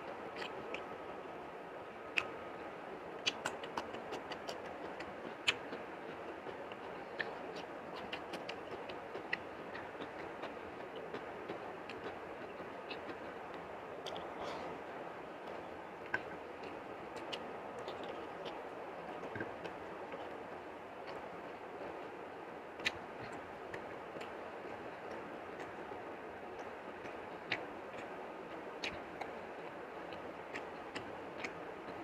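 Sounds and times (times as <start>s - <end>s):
chewing: 0.0s - 0.9s, 2.1s - 2.4s, 3.2s - 22.2s, 22.8s - 32.0s
wet eating clicks: 0.0s - 1.1s, 1.9s - 32.0s
steady background hiss: 0.0s - 32.0s
fingers clicking on a plate: 3.2s - 14.3s.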